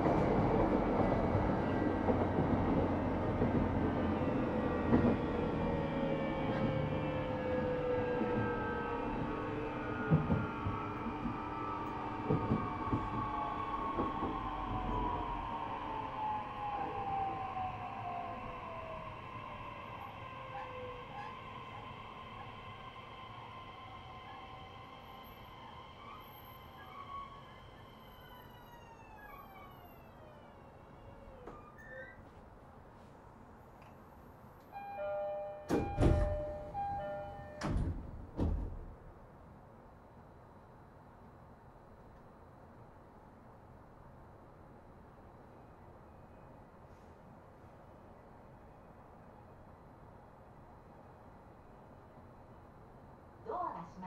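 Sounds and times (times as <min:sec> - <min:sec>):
electric train motors whining: 0:03.1 - 0:31.6.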